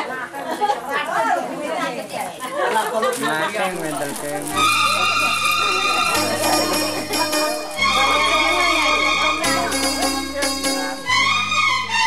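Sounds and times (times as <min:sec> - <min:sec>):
people talking over one another: 0:03.4 - 0:11.1.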